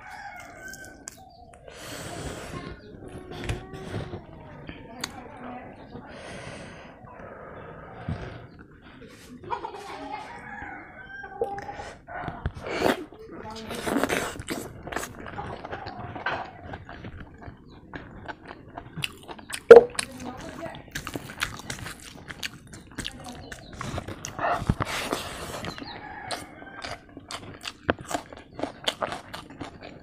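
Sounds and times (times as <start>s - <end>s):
wet chewing sounds: 0.0s - 9.3s, 11.4s - 30.0s
chicken clucking: 8.6s - 12.6s, 22.7s - 28.7s
fingers squeezing rice and curry: 12.3s - 30.0s.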